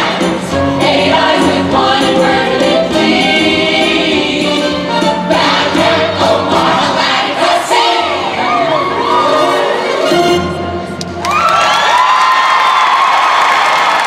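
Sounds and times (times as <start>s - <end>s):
band accompaniment: 0.0s - 8.2s
chorus singing: 0.0s - 10.8s.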